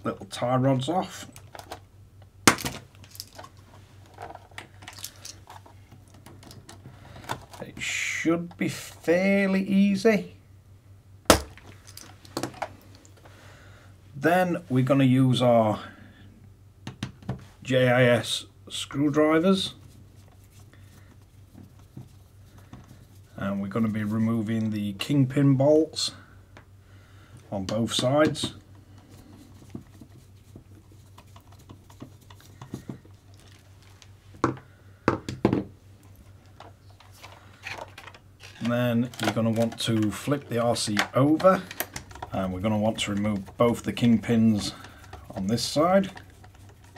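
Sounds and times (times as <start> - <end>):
low steady hum: 0.0 - 46.9
plastic parts clicking: 2.5 - 7.7, 36.4 - 46.9.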